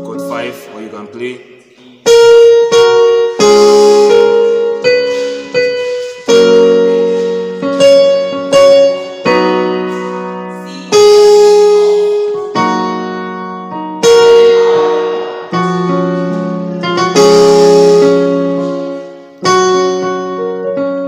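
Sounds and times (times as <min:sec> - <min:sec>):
electronic keyboard piano chords: 0:00.0 - 0:21.0.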